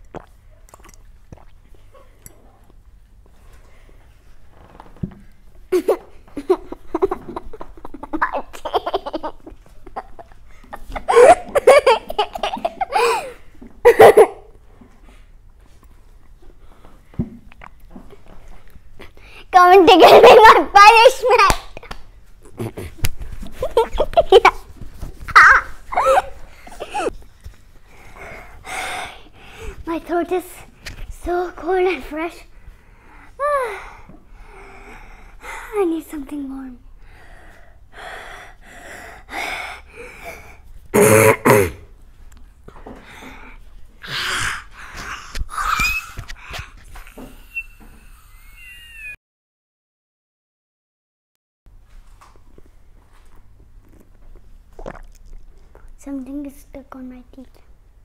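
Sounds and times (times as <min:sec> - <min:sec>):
boy laughing: 0:05.7 - 0:14.5, 0:19.8 - 0:20.7, 0:22.6 - 0:24.6, 0:25.3 - 0:27.1, 0:45.5 - 0:49.2
child gasping and breathing hard: 0:12.9 - 0:13.5, 0:27.9 - 0:29.9, 0:37.0 - 0:40.7, 0:42.9 - 0:46.9.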